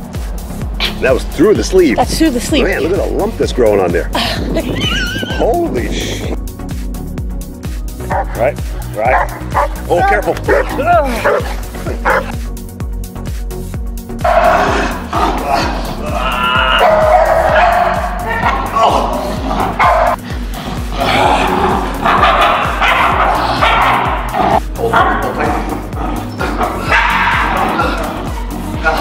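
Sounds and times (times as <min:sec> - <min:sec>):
music with low beat: 0:00.0 - 0:29.0
young dog growling: 0:09.1 - 0:12.3, 0:14.2 - 0:29.0.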